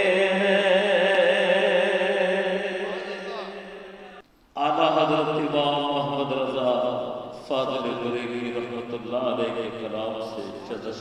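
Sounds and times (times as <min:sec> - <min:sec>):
man singing into a microphone: 0:00.0 - 0:03.7.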